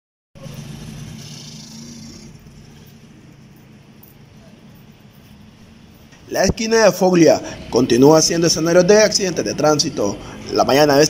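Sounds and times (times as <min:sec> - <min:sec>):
small motorcycle passing by: 0:00.4 - 0:03.2
street traffic: 0:00.4 - 0:11.0.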